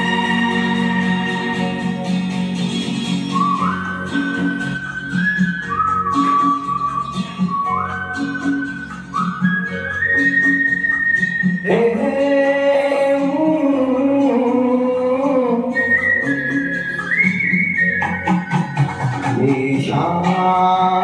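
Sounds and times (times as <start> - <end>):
whistle-like melody: 0.0 - 13.2, 15.2 - 21.0
plucked guitar-like accompaniment: 0.0 - 21.0.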